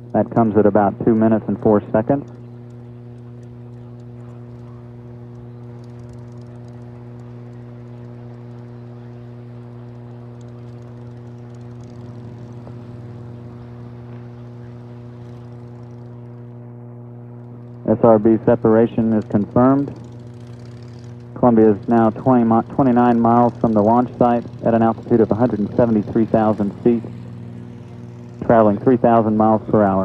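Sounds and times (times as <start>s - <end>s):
low electrical hum: 0.0s - 30.0s.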